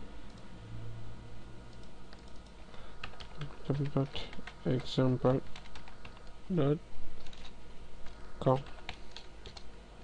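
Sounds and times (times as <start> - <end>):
computer keyboard keystrokes: 1.7 - 6.3, 7.2 - 9.7.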